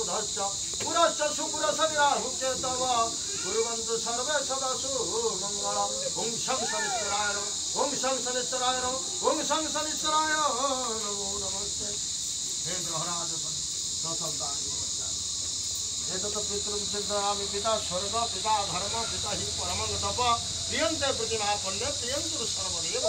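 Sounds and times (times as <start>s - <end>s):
insects droning: 0.0s - 23.0s
people's voices: 0.0s - 23.0s.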